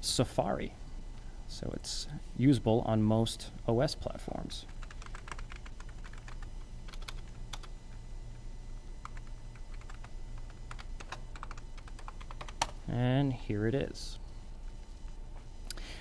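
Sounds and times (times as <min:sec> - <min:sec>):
low steady hum: 0:00.0 - 0:16.0
keyboard typing clicks: 0:04.8 - 0:07.7, 0:09.0 - 0:12.8.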